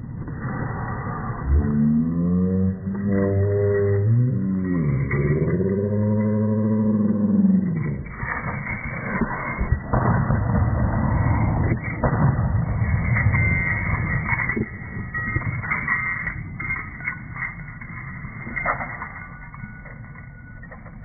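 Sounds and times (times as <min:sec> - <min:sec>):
rough rumble: 0:00.0 - 0:21.0
slowed deep voice: 0:00.3 - 0:08.2.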